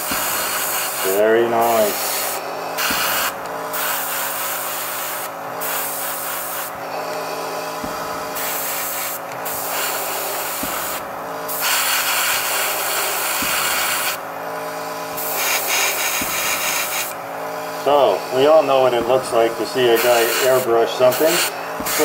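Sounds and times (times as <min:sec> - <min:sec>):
airbrush hissing: 0:00.0 - 0:22.0
steady low hum: 0:00.0 - 0:22.0.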